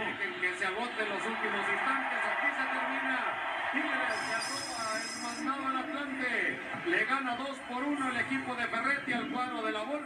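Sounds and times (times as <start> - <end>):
broadcast voices: 0.0 - 10.0
referee's whistle blast: 4.0 - 5.5.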